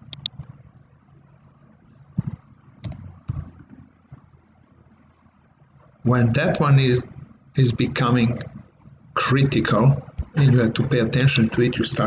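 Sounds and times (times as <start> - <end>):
computer keyboard and mouse clicks: 0.0 - 0.6, 2.2 - 4.2.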